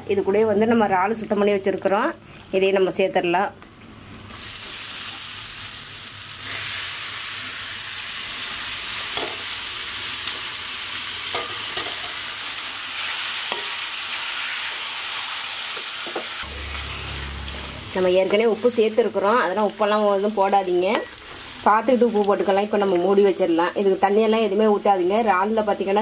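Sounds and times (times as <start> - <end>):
prawns sizzling in hot oil: 4.2 - 25.1.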